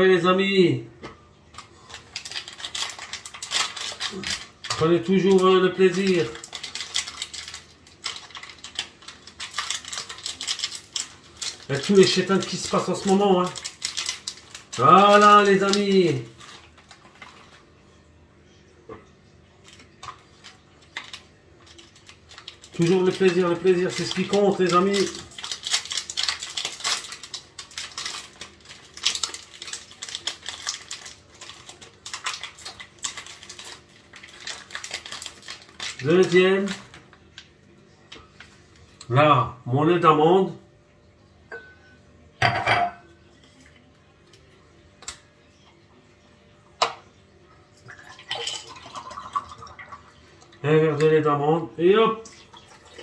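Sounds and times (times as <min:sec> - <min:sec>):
plastic wrapper crinkling and tearing: 0:01.5 - 0:18.1, 0:19.4 - 0:39.1.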